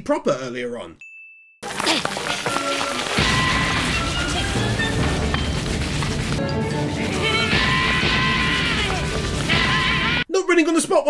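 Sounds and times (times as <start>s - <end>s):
anime soundtrack music: 1.6s - 10.3s.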